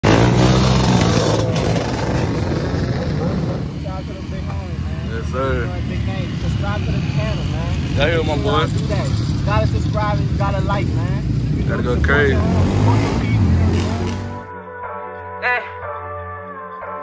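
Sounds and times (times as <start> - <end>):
atv and dirt bike engines: 0.0 - 14.5.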